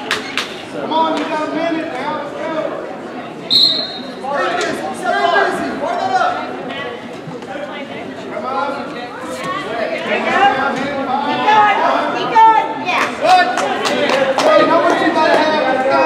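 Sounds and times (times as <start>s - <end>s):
people shouting and talking: 0.0s - 16.0s
short high-pitched whistle: 3.5s - 4.1s.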